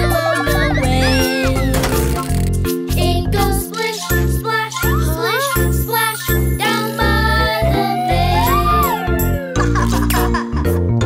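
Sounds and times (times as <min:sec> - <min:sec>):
children's song backing track: 0:00.0 - 0:11.0
cartoon cat meowing: 0:07.5 - 0:09.8.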